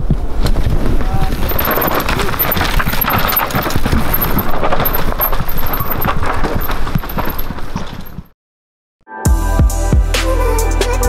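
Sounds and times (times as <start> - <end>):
bike rattling: 0.0 - 8.3
bike tyres crunching over dirt: 0.0 - 8.3.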